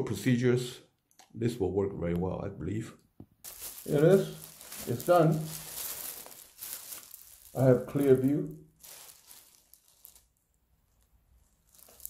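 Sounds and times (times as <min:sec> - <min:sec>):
plastic bag rustling: 0:03.4 - 0:12.0.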